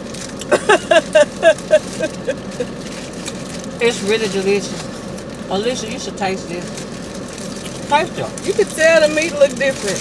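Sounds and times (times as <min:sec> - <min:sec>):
car engine idling: 0:00.0 - 0:10.0
high-pitched laughter: 0:00.4 - 0:02.7.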